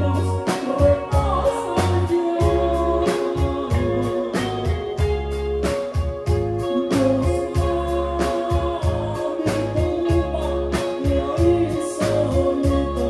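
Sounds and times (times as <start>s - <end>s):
bass guitar: 0.0s - 13.0s
electric guitars: 0.0s - 13.0s
keyboard: 0.0s - 13.0s
person singing: 0.0s - 13.0s
steady drum beat: 0.0s - 13.0s.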